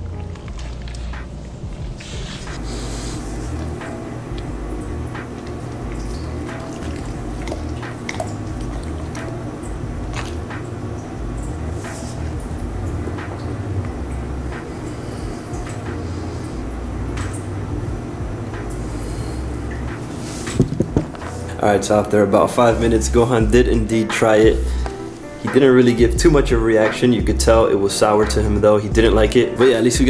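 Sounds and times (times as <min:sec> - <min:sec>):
background music beat: 0:00.0 - 0:30.0.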